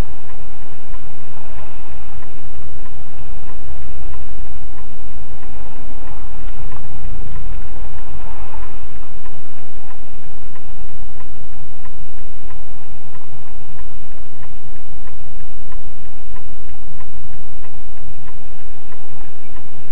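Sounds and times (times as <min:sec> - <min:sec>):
turn signal ticking: 0:00.0 - 0:19.9.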